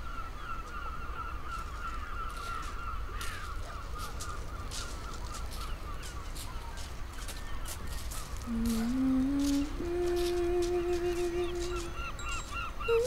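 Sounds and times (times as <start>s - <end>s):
flock of birds chattering: 0.0s - 13.0s.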